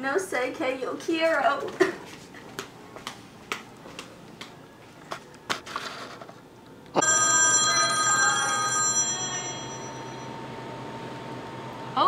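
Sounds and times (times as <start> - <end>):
telephone ringing: 7.0 - 10.5.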